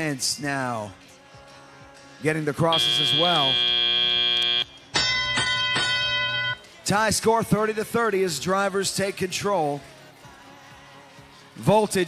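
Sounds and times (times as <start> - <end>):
ringing chime tone: 2.7 - 6.7.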